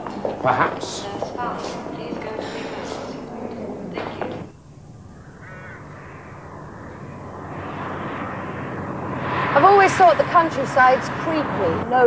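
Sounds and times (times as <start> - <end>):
car engine: 0.0 - 12.0
low steady hum: 0.0 - 12.0
crow cawing: 4.5 - 8.9.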